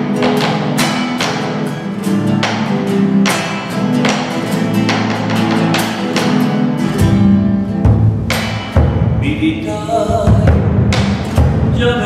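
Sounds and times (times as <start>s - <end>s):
classical guitar strummed: 0.0s - 12.0s
bass drum deep beats: 6.9s - 12.0s.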